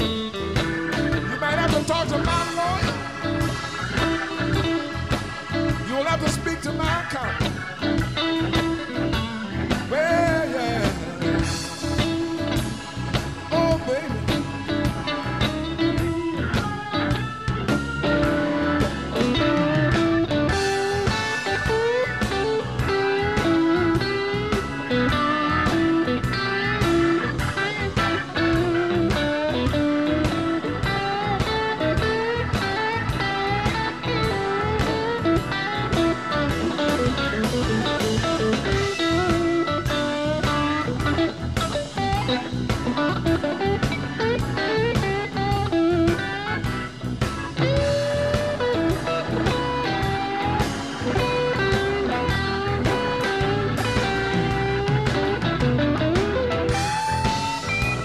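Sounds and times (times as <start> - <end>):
live blues band playing: 0.0 - 58.0.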